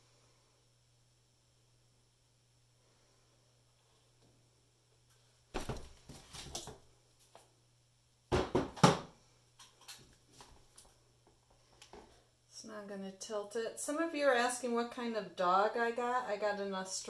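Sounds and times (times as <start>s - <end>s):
plastic cups knocking and clattering: 8.3s - 9.7s.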